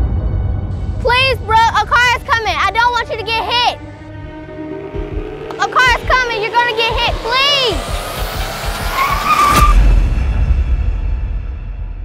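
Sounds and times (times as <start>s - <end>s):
car tyres screeching: 4.5s - 10.0s.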